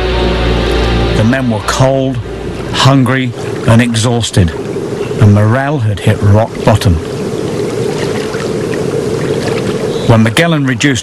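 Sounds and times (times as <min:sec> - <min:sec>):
rushing water: 0:00.0 - 0:11.0.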